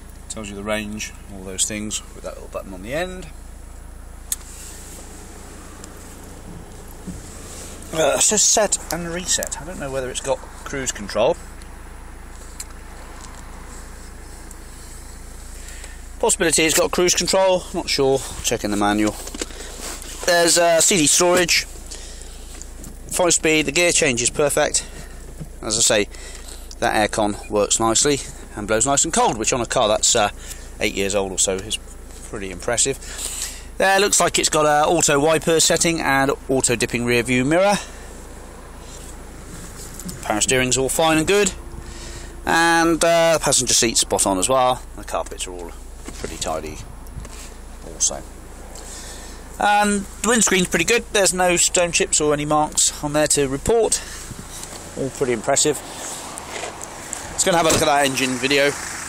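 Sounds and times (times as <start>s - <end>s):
diesel engine idling: 0.0s - 59.0s.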